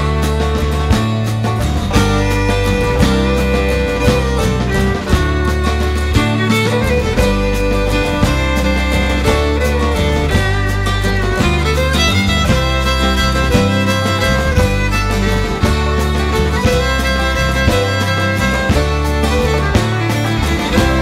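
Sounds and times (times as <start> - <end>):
acoustic guitar: 0.0 - 21.0
fiddle melody: 0.0 - 21.0
low bass line: 0.0 - 21.0.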